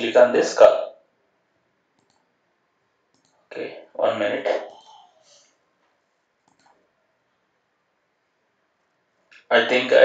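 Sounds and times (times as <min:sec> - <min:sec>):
computer mouse click: 0:02.0 - 0:02.3, 0:03.1 - 0:03.4, 0:06.4 - 0:06.8.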